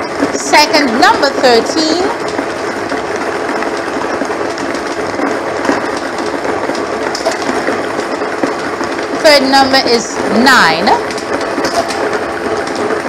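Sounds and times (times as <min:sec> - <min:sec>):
blower whirring: 0:00.0 - 0:13.0.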